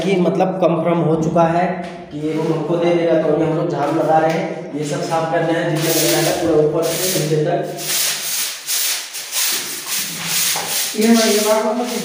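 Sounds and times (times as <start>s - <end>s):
hand broom brushing concrete wall: 4.8s - 12.0s.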